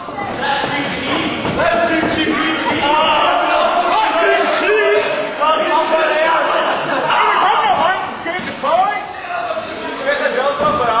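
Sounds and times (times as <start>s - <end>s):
voices in a large hall: 0.0s - 11.0s.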